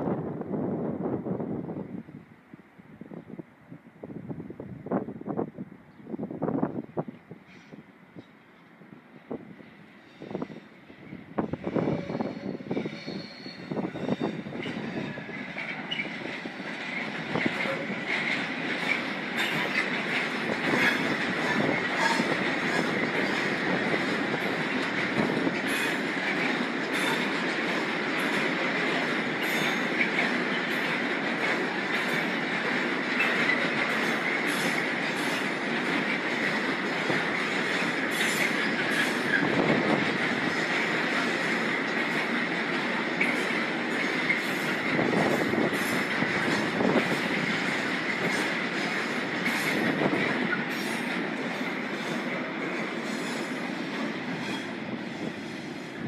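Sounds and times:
train wheels rolling on rails: 4.8 - 56.0
high wheel squeal: 11.7 - 16.2
wheels clacking over rail joints: 12.3 - 55.8.

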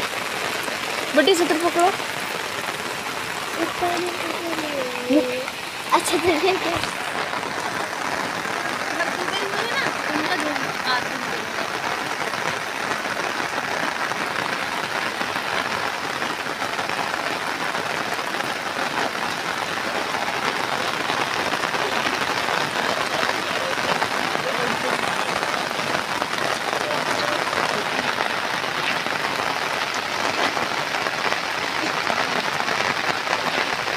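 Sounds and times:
heavy rain falling: 0.0 - 33.9.

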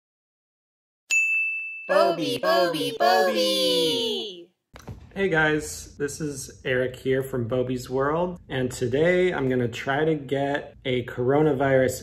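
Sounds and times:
bright ding: 1.1 - 1.9.

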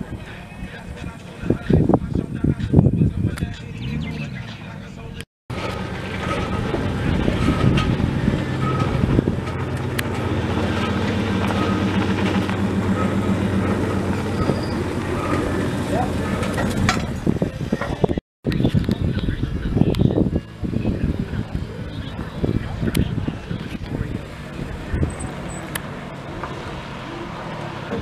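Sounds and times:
truck engine idling: 0.0 - 18.2, 19.0 - 28.0.

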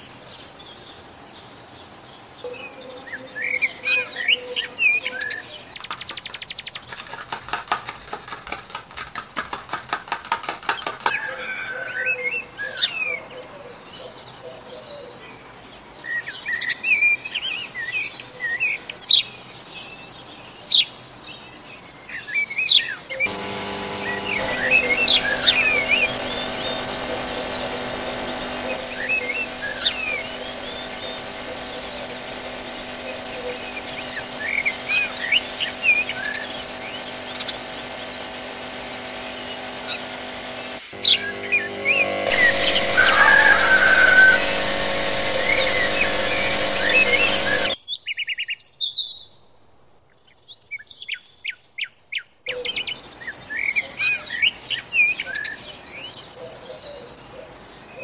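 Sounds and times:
small birds chirping: 0.0 - 9.0, 9.6 - 49.4
fast run of clicks: 5.7 - 11.5, 23.3 - 47.8
steady multi-tone hum: 23.3 - 47.8.

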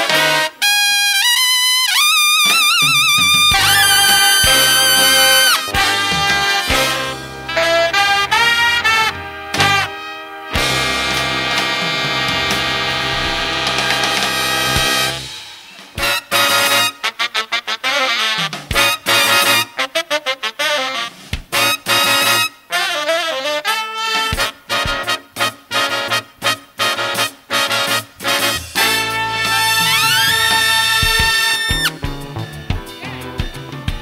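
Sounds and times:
jazz big band brass: 0.0 - 34.0.

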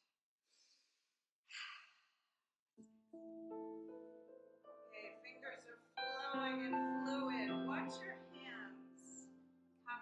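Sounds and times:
woman exhaling: 1.5 - 2.0.

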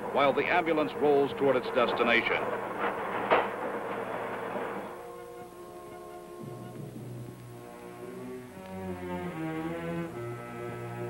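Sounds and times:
truck ride rumbling hiss: 0.0 - 11.0.

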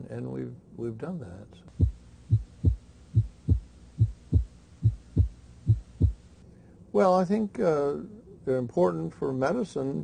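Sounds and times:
heartbeat thumps: 1.7 - 6.3.

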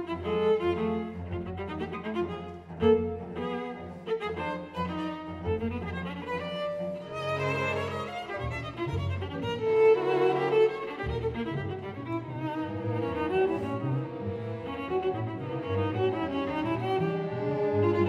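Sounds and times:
cellos and double basses sustaining: 0.0 - 18.0
string orchestra: 0.0 - 18.0.

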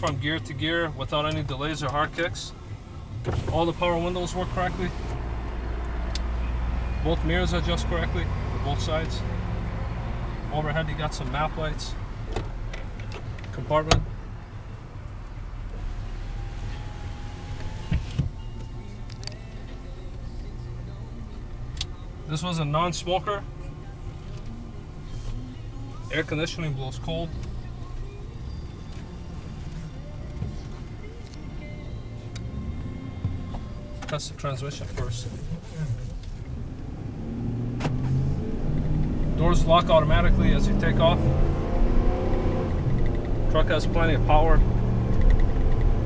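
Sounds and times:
truck engine accelerating: 15.3 - 22.0, 23.0 - 46.0.

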